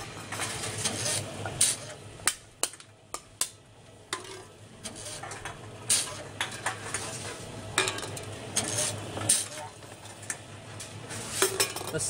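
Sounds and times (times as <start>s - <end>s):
conveyor humming: 0.0s - 12.0s.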